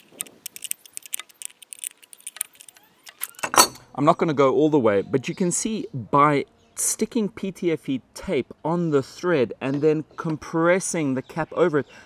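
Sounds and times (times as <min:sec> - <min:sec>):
metal cap clicking and scraping: 0:00.0 - 0:03.9.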